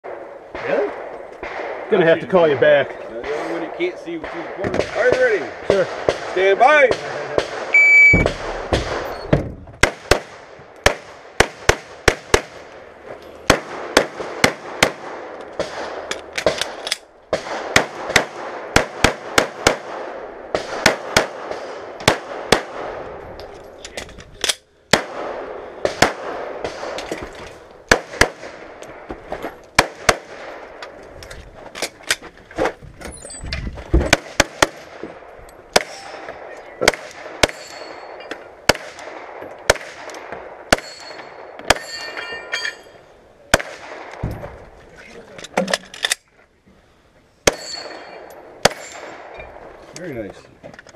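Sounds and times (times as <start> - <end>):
pistol shots: 0.1 - 2.2, 3.2 - 12.7, 13.4 - 23.0, 24.9 - 27.2, 27.9 - 29.0, 29.8 - 30.8, 34.1 - 42.2, 43.5 - 44.2, 47.4 - 49.7
shot timer beep: 7.8 - 8.3.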